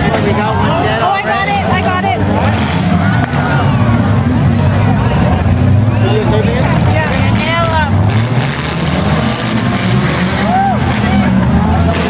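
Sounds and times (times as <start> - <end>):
voices shouting: 0.0 - 4.9, 10.2 - 12.0
car engines rumbling: 0.0 - 12.0.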